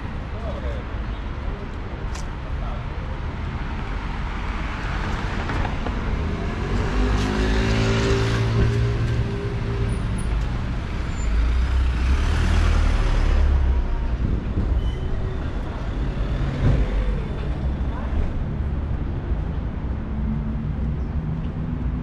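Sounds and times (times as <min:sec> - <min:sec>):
steady traffic rumble: 0:00.0 - 0:22.0
vehicles driving past: 0:00.0 - 0:22.0.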